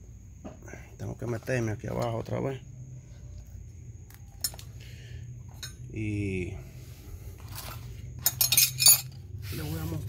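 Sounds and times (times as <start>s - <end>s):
metal tools clinking: 4.4s - 4.7s, 5.5s - 5.8s, 7.4s - 9.3s.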